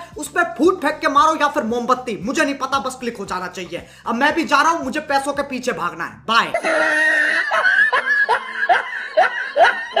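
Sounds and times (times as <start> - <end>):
person snickering laugh: 6.6 - 10.0.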